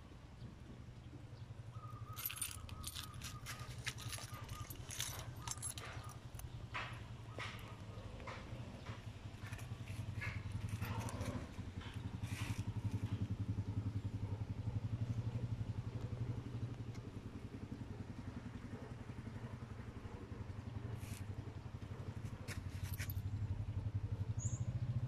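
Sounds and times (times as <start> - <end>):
engine pulsing hum: 0.0 - 25.0.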